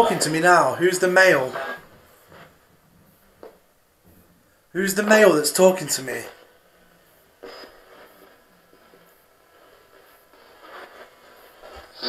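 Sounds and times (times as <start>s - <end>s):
choppy radio fragments: 0.0s - 3.3s, 4.7s - 12.0s
radio hiss: 0.0s - 12.0s.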